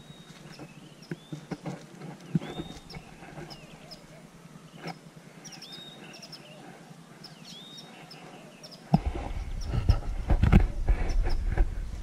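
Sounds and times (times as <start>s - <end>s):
small birds chirping: 0.0s - 12.0s
microphone handling rumble: 8.9s - 12.0s.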